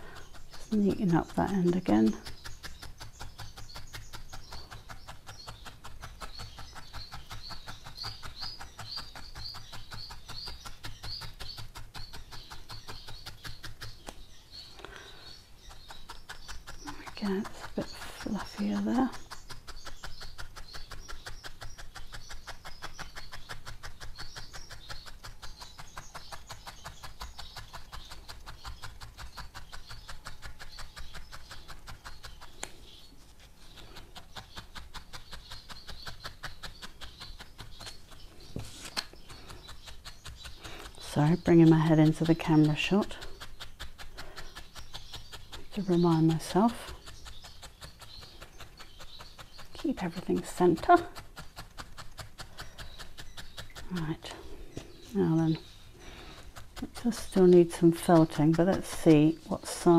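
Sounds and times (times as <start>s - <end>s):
felting needle stabbing wool: 0.0s - 59.9s.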